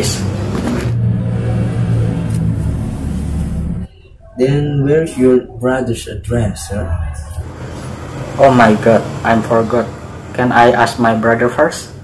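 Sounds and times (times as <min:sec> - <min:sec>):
held low tones: 0:00.0 - 0:10.7
steady low rumble: 0:00.0 - 0:10.7.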